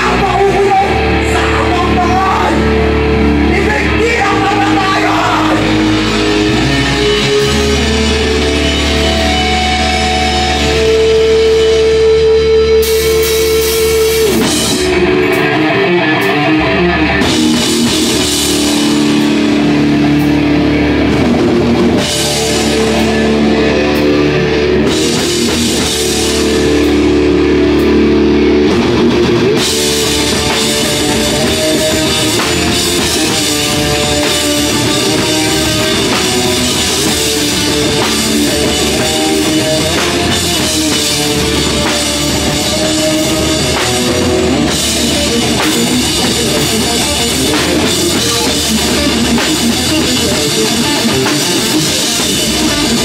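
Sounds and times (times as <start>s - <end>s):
bass guitar: 0.0s - 53.0s
distorted electric guitar: 0.0s - 53.0s
drum kit: 0.0s - 53.0s.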